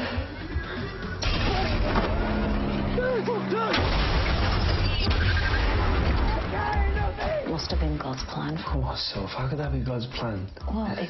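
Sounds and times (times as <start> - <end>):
rocket launcher blast: 1.2 - 2.2, 3.7 - 6.5
explosion with heavy rumble: 3.8 - 6.6
people shouting: 6.2 - 7.6.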